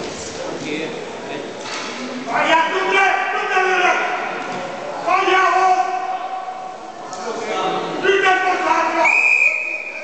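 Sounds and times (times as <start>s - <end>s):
referee whistle long blast: 9.0s - 10.0s.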